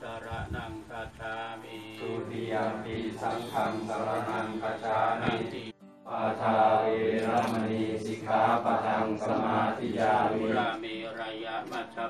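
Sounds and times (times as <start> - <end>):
voices chanting in unison: 0.0 - 12.0.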